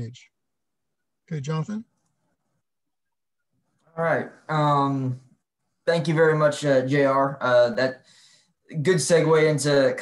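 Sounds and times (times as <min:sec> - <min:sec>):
man speaking: 0:00.0 - 0:00.4, 0:01.2 - 0:02.0, 0:03.8 - 0:08.1, 0:08.7 - 0:10.0.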